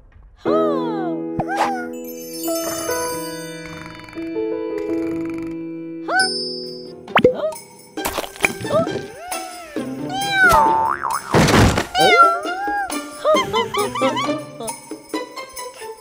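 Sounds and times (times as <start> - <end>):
light music: 0.4 - 16.0
kitten meowing: 10.1 - 10.8
cartoon springy boing: 10.3 - 12.3.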